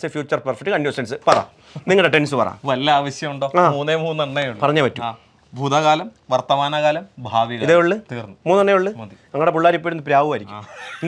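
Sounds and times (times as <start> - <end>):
man speaking animatedly: 0.0 - 10.7.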